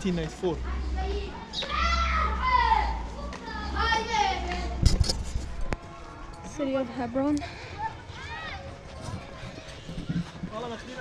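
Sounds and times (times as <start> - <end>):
children calling out: 0.8 - 4.8, 7.6 - 10.4.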